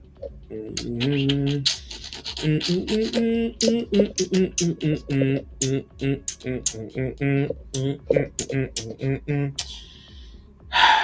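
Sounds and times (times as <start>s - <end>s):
man vocalizing pitched syllables: 0.4s - 10.0s.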